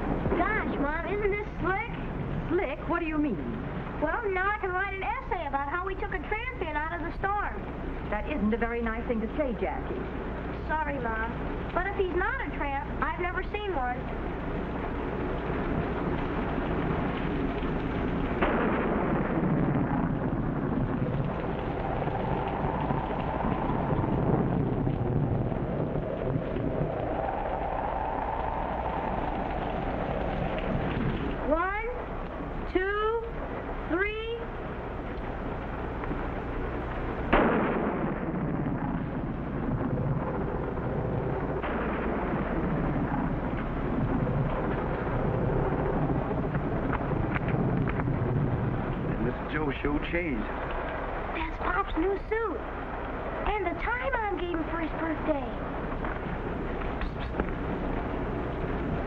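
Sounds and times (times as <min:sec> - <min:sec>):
heavy rain pouring: 0:00.0 - 0:59.0
low storm rumble: 0:00.0 - 0:59.0
sudden sharp burst: 0:18.4 - 0:25.8, 0:37.3 - 0:45.5.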